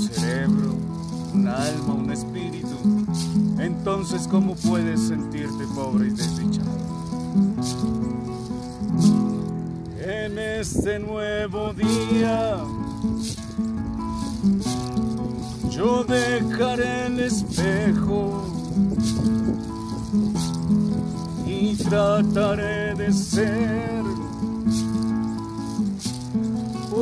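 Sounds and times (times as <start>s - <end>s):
person singing: 0.0s - 2.9s, 21.4s - 24.5s
hand-shaken rattle: 0.0s - 10.9s, 11.7s - 27.0s
acoustic guitar chords: 0.0s - 27.0s.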